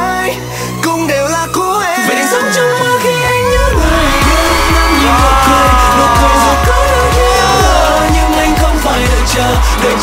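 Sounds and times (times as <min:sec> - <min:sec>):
male vocals: 0:00.0 - 0:10.0
heavy electronic bass beat: 0:03.6 - 0:10.0.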